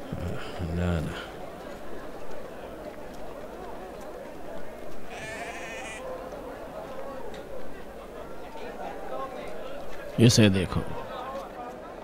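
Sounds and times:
low background murmur: 0.0 - 12.0
sheep bleating: 5.1 - 6.0.

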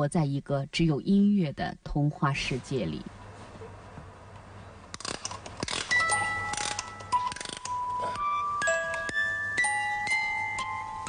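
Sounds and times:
music box winding clicks: 5.0 - 7.9
music box ringing notes: 5.9 - 11.0.

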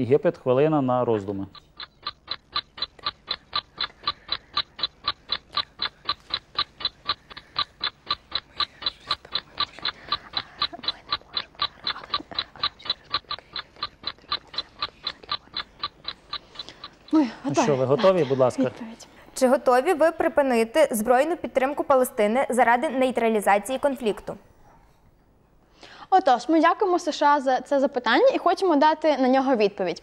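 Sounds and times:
timer ticking: 1.2 - 18.8.

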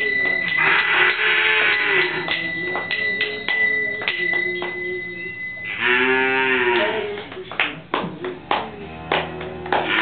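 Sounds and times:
cow mooing: 0.6 - 2.3, 5.7 - 7.2, 8.8 - 10.0.

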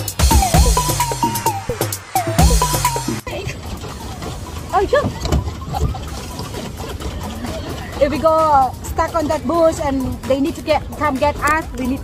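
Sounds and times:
low steady rumble: 0.4 - 12.0.

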